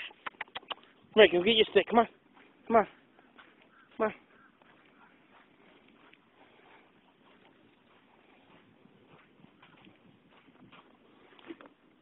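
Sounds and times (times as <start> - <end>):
faint outdoor background: 0.0 - 12.0
man calling to a dog: 1.1 - 3.0, 3.8 - 5.2.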